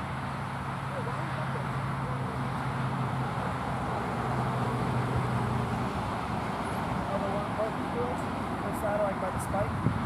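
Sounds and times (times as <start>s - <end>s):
distant voices: 0.0s - 9.7s
truck engine noise: 0.0s - 10.0s.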